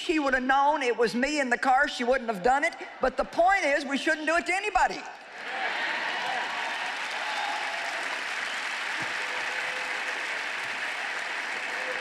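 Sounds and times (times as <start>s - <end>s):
audience applauding: 5.4s - 12.0s.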